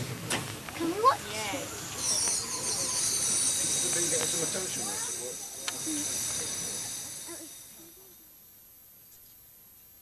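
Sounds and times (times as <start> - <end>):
faint voices: 0.7 - 8.4
steam locomotive hissing: 1.0 - 8.3.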